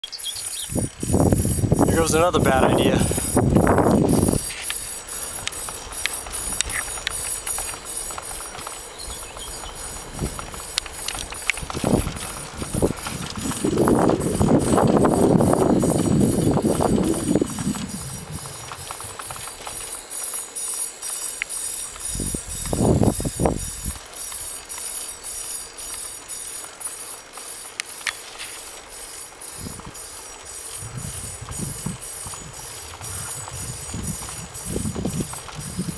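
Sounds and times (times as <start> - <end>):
fast faint ticking: 0.5 - 35.9
wind buffeting microphone: 0.6 - 20.1, 21.9 - 24.6, 29.5 - 35.9.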